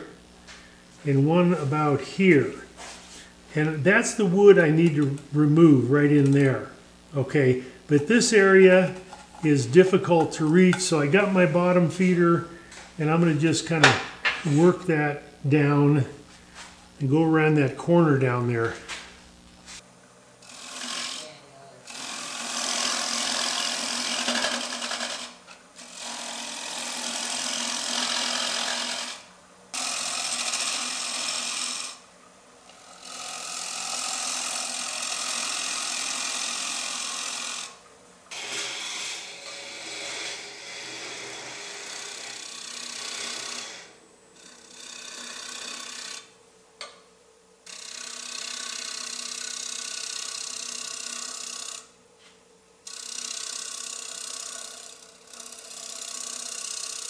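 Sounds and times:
lathe tool cutting wooden bowl: 20.4 - 32.0, 32.7 - 46.3, 47.7 - 51.8, 52.9 - 57.0.

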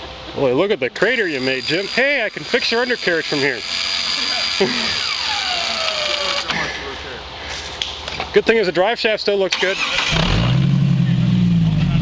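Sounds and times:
motor high whine: 1.0 - 6.9.

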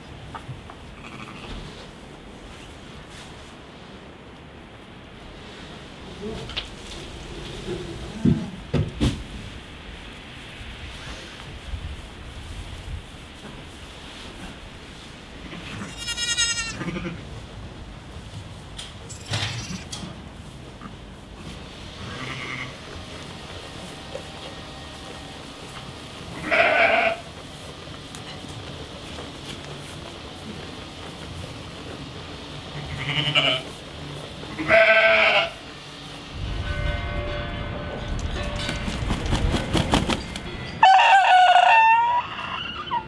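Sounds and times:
lamb bleating: 1.0 - 1.6, 15.5 - 17.2, 26.4 - 27.3, 32.8 - 33.7, 34.5 - 35.6
low rumbling noise: 35.8 - 41.6.

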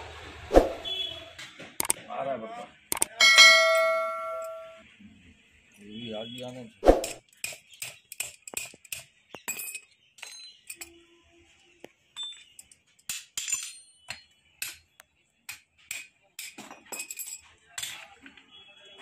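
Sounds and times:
sharp metal knocks: 3.0 - 4.8
metal clinks: 3.1 - 4.8
bell-like metal ring: 3.2 - 4.8.

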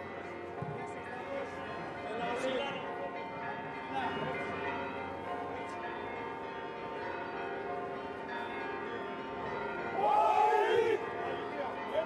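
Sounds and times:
church bells pealing: 0.0 - 12.0.

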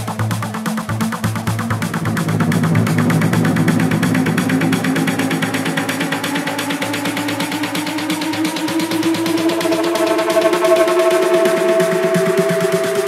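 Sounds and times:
trance music with synth pulses: 0.0 - 13.0.

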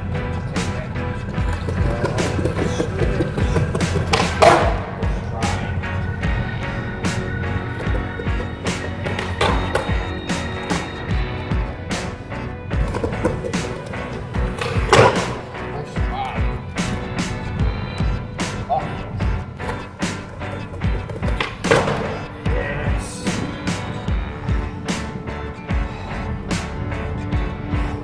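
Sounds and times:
skateboard rolling on stone: 0.0 - 22.6
background music with steady beat: 0.0 - 28.0
skateboard tail pops and landings: 3.7 - 4.9, 14.5 - 15.4, 21.1 - 22.2.

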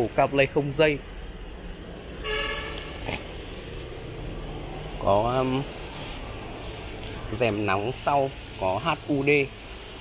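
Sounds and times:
vehicle horn toot: 2.2 - 3.1.

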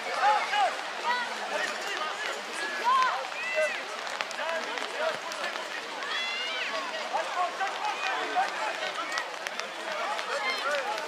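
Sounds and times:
young children shouting: 6.0 - 6.9.

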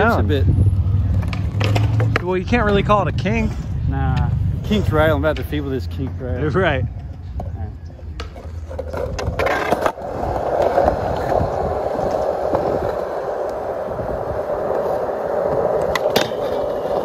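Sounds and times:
skateboard wheels rolling on concrete: 0.0 - 17.0
skateboard clattering down: 8.2 - 17.0.

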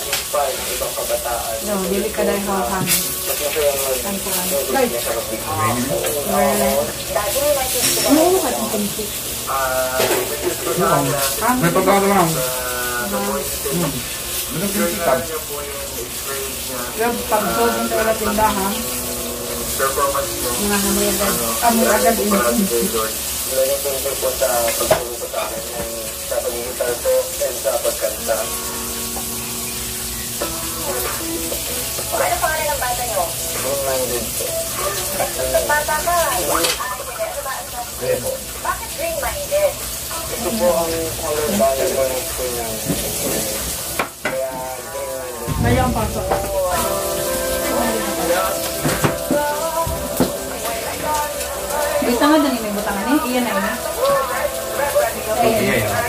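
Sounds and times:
meat sizzling on grill pan: 0.0 - 56.0
voices talking: 0.0 - 56.0.

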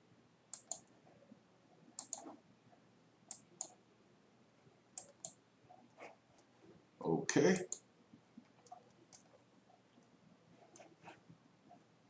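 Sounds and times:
faint room hush: 0.0 - 12.0.

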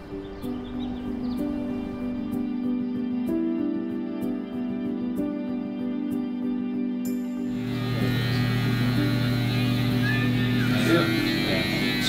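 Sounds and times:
electric hair clippers humming: 7.4 - 12.0.

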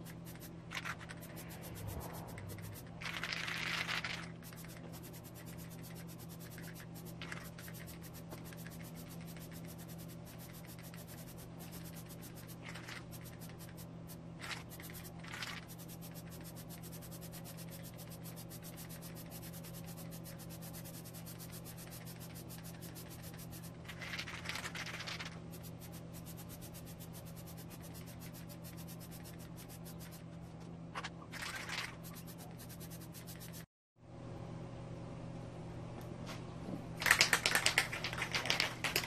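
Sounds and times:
aerosol spray can hissing: 0.0 - 30.2
low hum: 0.0 - 39.0.

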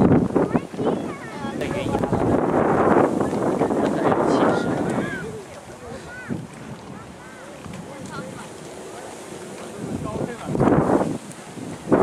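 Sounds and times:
wind on microphone: 0.0 - 12.0
faint distant voices: 0.4 - 10.6.

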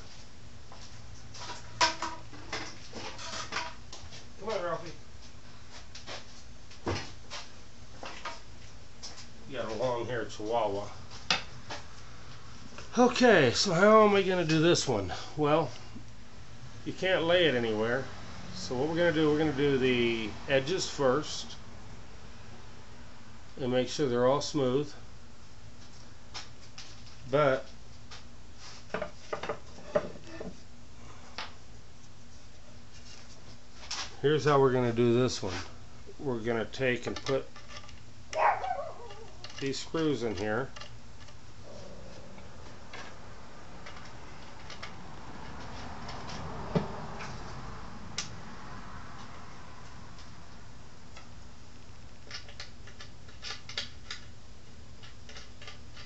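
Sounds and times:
faint steady hum: 0.0 - 56.0.

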